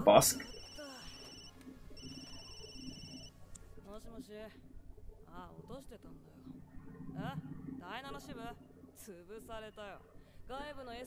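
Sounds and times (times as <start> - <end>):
phone ringtone: 0.0 - 3.3.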